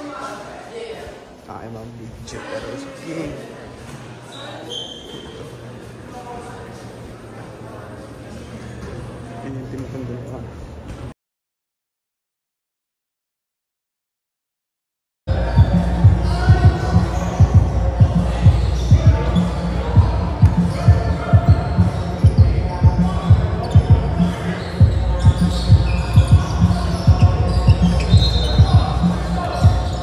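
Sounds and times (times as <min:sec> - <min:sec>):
music with heavy bass beat: 0:15.3 - 0:30.0.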